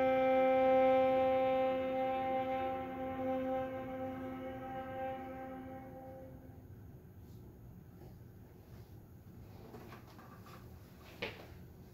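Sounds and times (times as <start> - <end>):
viola bowed note: 0.0 - 6.8.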